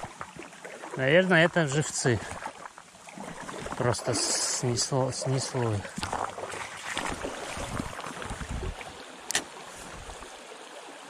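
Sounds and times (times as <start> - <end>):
river running over stones: 0.0 - 11.0.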